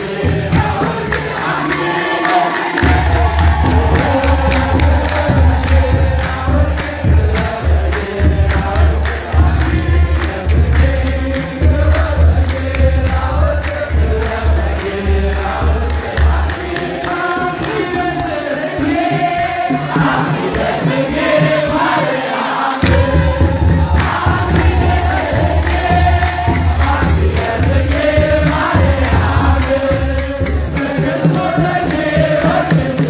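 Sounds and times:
clergy chanting in unison: 0:00.0 - 0:33.0
drum beat: 0:00.0 - 0:33.0.

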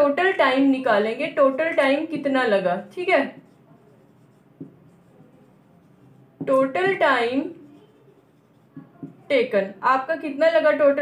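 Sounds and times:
marker scratching on whiteboard: 0:00.0 - 0:09.8
marker tap: 0:03.2 - 0:07.1, 0:08.2 - 0:09.3.

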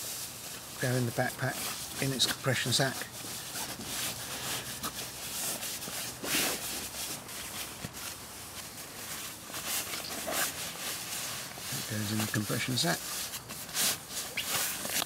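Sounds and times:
sleeping bag fabric rustling: 0:00.0 - 0:15.0.

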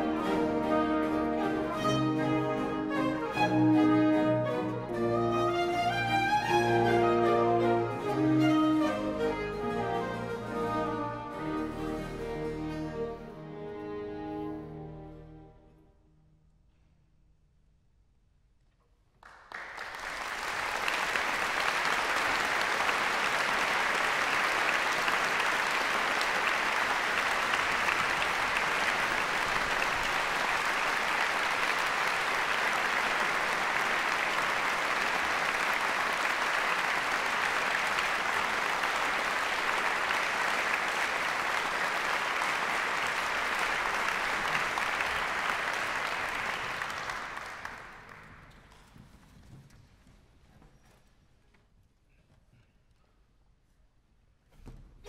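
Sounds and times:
audience applauding: 0:00.0 - 0:11.7, 0:19.2 - 0:48.9.

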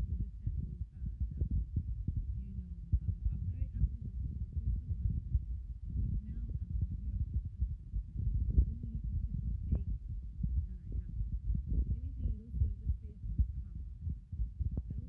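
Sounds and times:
muffled microphone rumble and thumping: 0:00.0 - 0:15.0
faint muffled voices: 0:02.4 - 0:05.2, 0:10.6 - 0:14.0.

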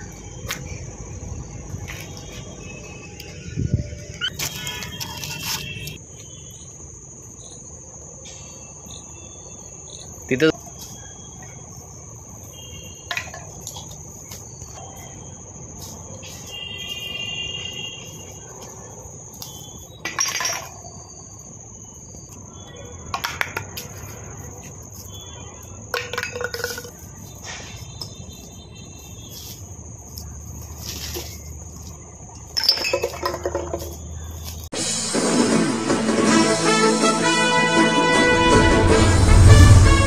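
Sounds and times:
insects droning: 0:00.0 - 0:40.0
glass bottles clinking and knocking: 0:20.0 - 0:20.9, 0:25.9 - 0:27.0, 0:32.4 - 0:34.0.

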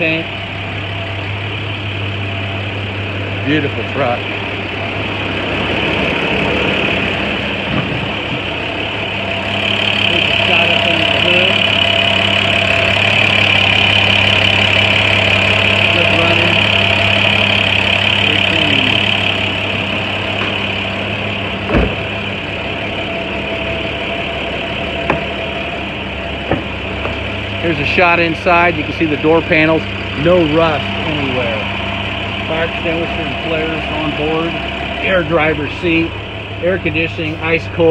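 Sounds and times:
diesel engine idling: 0:00.0 - 0:37.9
high whine: 0:00.0 - 0:37.9.

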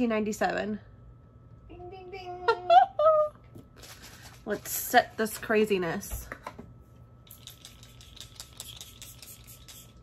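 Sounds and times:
spray bottle spritzing: 0:07.3 - 0:10.0.

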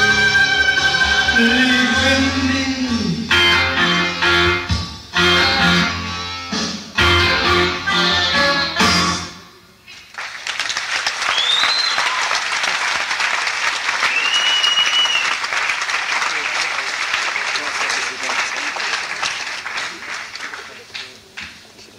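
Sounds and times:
audience applauding: 0:10.0 - 0:21.8
whistles: 0:11.2 - 0:12.4, 0:14.0 - 0:15.4.

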